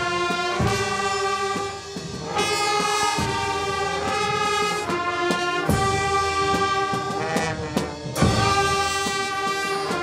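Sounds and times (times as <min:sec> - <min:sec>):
brass band playing chords: 0:00.0 - 0:10.0
low drum beats: 0:00.0 - 0:10.0.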